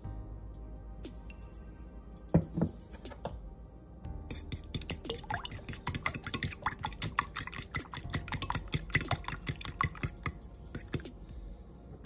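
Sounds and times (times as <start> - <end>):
fork beating eggs in a bowl: 4.3 - 11.1.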